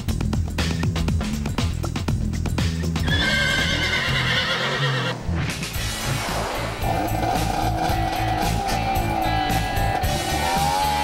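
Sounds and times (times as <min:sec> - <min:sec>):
background music: 0:00.0 - 0:11.0
horse whinnying: 0:03.0 - 0:05.2.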